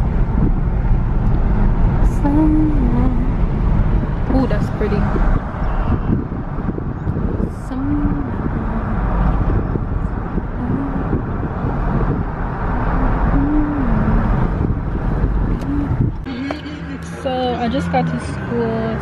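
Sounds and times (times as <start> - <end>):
car interior road rumble: 0.0 - 19.0.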